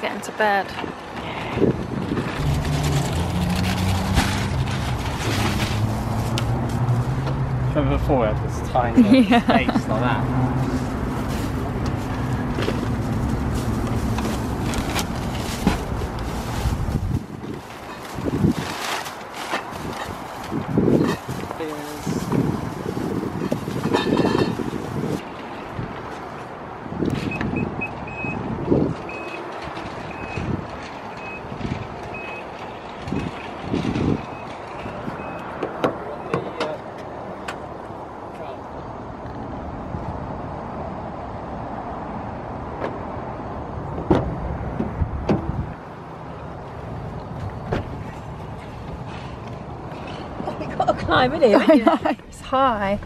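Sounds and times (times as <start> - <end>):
plastic bags rustling: 2.4 - 7.1, 10.6 - 25.2.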